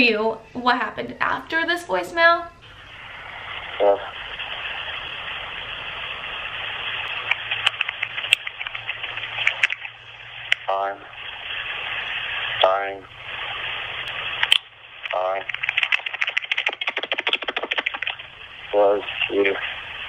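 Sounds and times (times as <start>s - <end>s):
rough rustling on phone: 3.1s - 10.5s.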